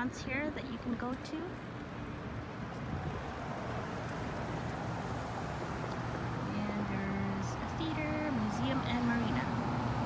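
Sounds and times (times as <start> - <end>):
road traffic rumble: 0.0 - 10.0
wind on microphone: 2.6 - 4.8.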